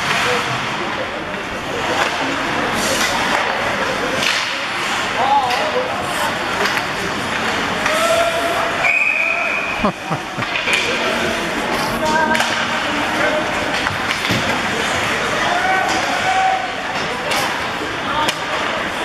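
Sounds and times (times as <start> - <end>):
hockey sticks clacking puck: 0.0 - 8.2, 10.4 - 19.0
players and spectators shouting: 7.8 - 13.4, 15.0 - 16.8.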